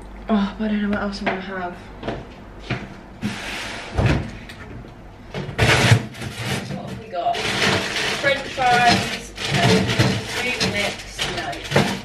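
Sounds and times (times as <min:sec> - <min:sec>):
woman's voice: 0:00.3 - 0:01.9, 0:06.5 - 0:12.0
cupboard doors opening and shutting: 0:03.2 - 0:04.5
loud clatter: 0:05.4 - 0:12.0.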